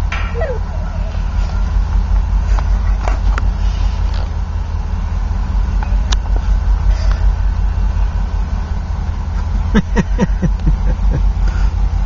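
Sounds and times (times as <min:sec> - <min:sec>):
low vehicle rumble: 0:00.0 - 0:12.0.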